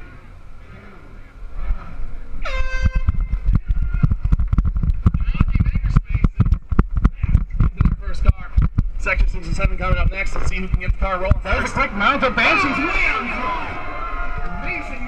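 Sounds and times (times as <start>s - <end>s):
air horn blaring: 2.4s - 3.3s
low thumping and rattling: 2.6s - 12.0s.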